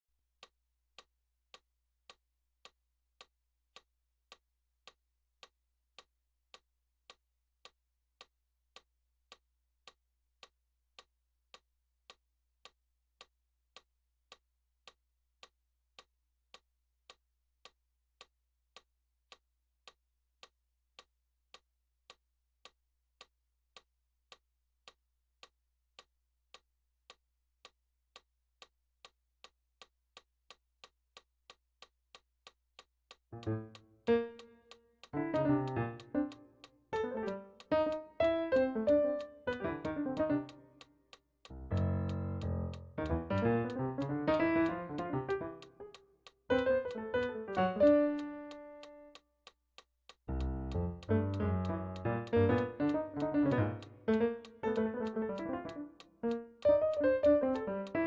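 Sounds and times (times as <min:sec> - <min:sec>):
electronic metronome clicking: 0:32.8 - 0:58.0.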